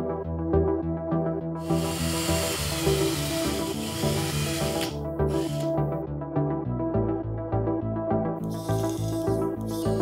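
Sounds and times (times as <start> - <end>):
background music: 0.0 - 10.0
cordless drill running: 1.6 - 5.8, 8.5 - 10.0.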